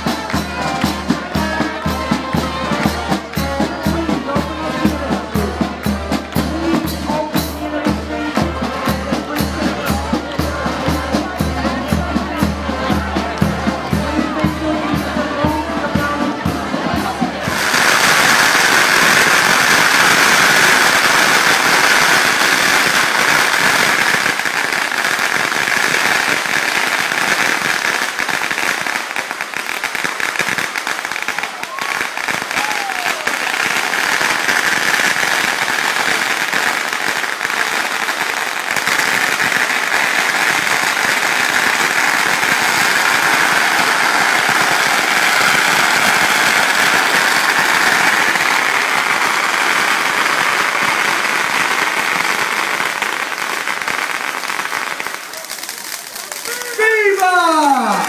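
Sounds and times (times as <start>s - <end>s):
fireworks fizzing and crackling: 0.0s - 58.0s.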